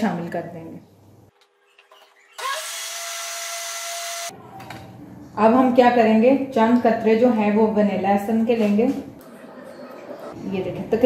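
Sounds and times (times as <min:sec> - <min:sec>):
blender motor whining: 0:01.8 - 0:04.3.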